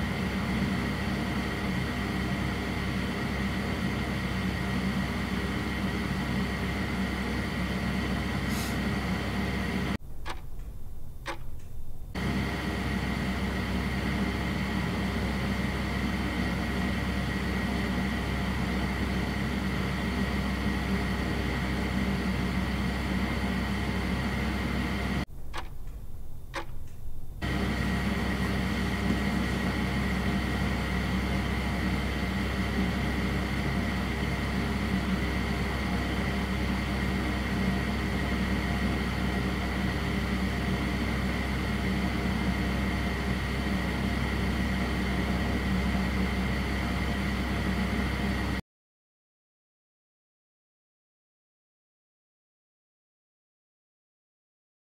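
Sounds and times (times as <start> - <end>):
machine hum with hiss: 0.0 - 48.6
clicks: 10.2 - 12.2, 25.5 - 27.4.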